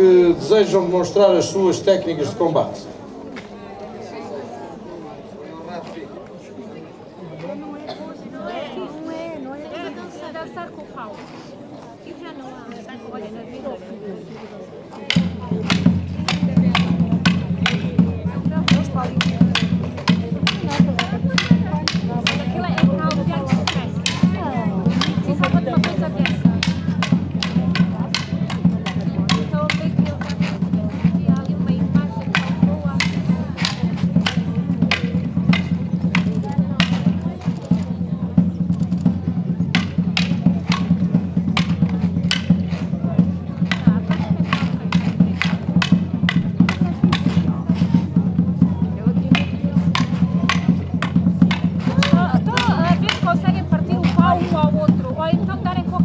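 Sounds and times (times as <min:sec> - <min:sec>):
drumming: 0:15.0 - 0:56.0
wooden staves clacking: 0:15.0 - 0:56.0.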